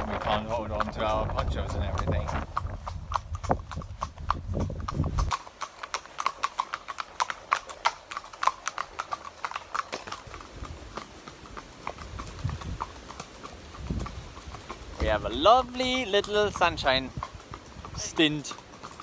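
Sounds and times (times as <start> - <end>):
wind rumble on microphone: 0.0 - 5.3, 12.0 - 13.0, 13.6 - 15.4
hooves clip-clopping on wet pavement: 0.0 - 19.0.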